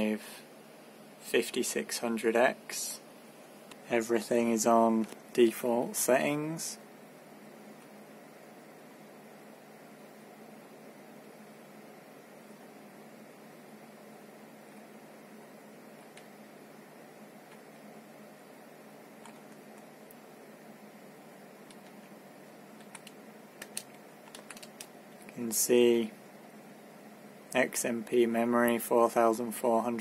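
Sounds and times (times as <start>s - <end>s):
computer fans humming: 0.0s - 30.0s.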